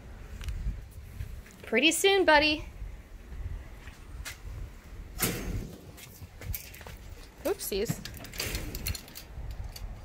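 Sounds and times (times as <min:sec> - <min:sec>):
footsteps: 0:03.3 - 0:04.5, 0:05.5 - 0:08.3
clicks and rattles of mesh door: 0:07.8 - 0:10.0.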